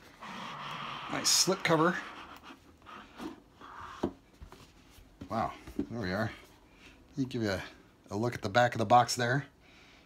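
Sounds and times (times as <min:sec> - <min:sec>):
cardboard rubbing scrape: 0:00.0 - 0:04.1.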